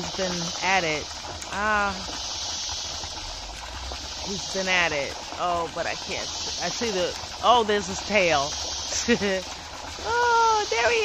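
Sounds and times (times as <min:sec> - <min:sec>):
steady outdoor hiss: 0:00.0 - 0:11.0.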